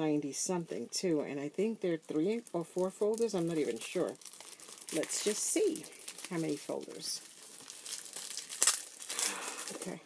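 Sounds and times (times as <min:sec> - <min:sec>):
plastic packaging crinkling: 0:01.2 - 0:10.0.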